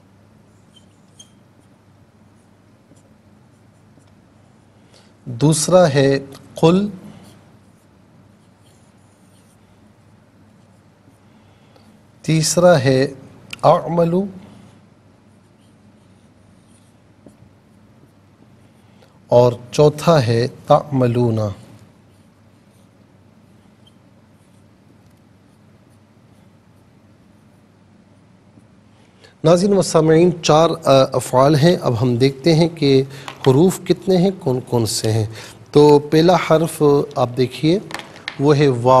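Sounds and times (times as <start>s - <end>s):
low room hum: 0.0s - 39.0s
marker pen on whiteboard: 0.3s - 38.9s
marker squeaking on whiteboard: 0.5s - 4.2s, 7.1s - 9.6s, 15.3s - 17.5s, 22.0s - 27.7s.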